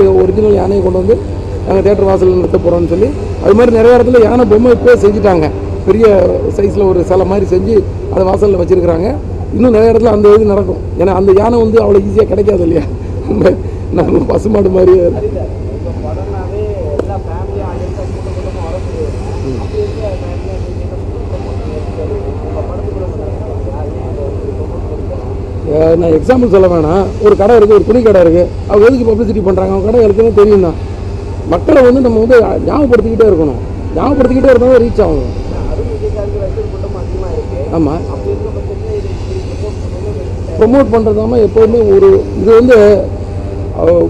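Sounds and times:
steady low rumble: 0:00.0 - 0:16.4, 0:29.8 - 0:41.6
man's wavering hesitation sound: 0:32.4 - 0:38.8.

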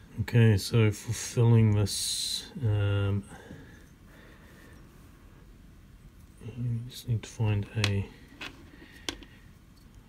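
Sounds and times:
quiet room noise: 0:00.0 - 0:10.0.

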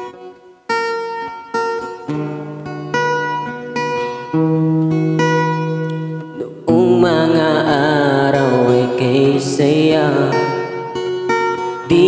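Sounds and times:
acoustic guitar: 0:00.0 - 0:12.0
man singing a ballad: 0:06.4 - 0:11.0.

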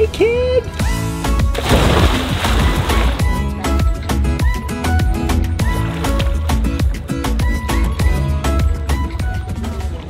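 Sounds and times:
churning water: 0:01.4 - 0:04.1, 0:05.6 - 0:07.1
splash into pool: 0:01.5 - 0:03.4.

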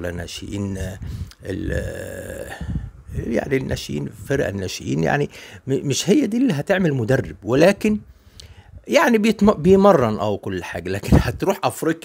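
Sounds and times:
man's drawn-out hesitation sound: 0:00.0 - 0:08.1.

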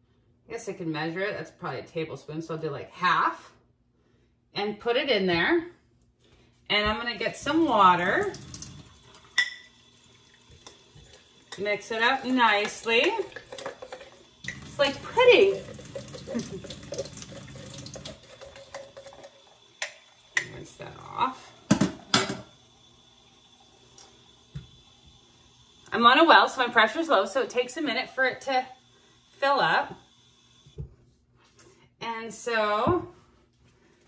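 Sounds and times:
thin stream of tap water: 0:07.5 - 0:20.7
glass jar clinking on faucet: 0:09.2 - 0:09.8.

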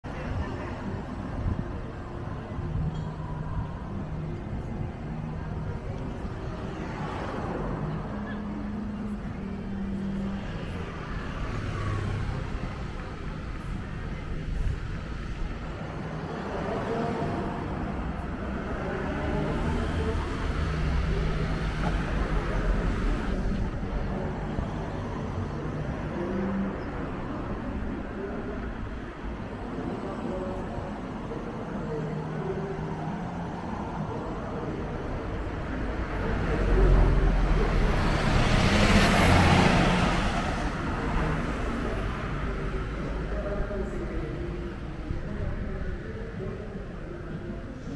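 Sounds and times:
road traffic passing: 0:00.0 - 0:47.9
tyres on asphalt: 0:00.0 - 0:47.9.

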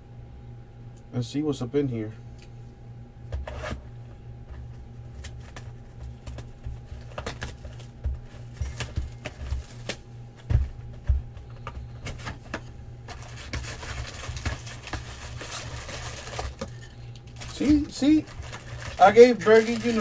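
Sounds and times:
cardboard flaps rustling: 0:04.5 - 0:20.0
taps and knocks on cardboard box: 0:05.4 - 0:15.2.

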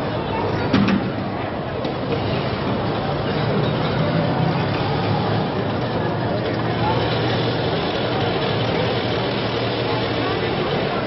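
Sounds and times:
indistinct voices: 0:00.0 - 0:11.0
traffic: 0:00.0 - 0:11.0.

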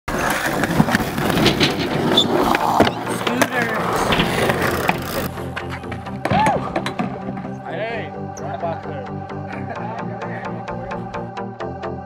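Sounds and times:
hard wheels rolling on concrete: 0:00.1 - 0:06.2
background music: 0:00.3 - 0:12.0.

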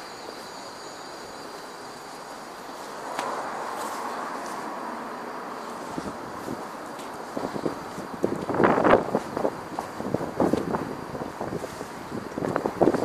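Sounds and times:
city street noise: 0:00.0 - 0:13.0.

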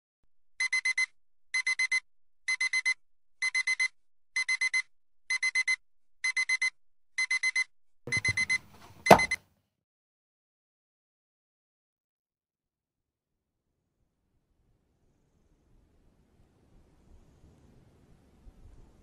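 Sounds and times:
digital alarm clock beeping: 0:00.6 - 0:09.4
sharp knock: 0:09.1 - 0:09.4.

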